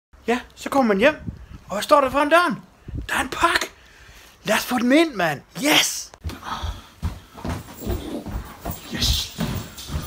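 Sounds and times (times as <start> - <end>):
footsteps: 6.1 - 10.0.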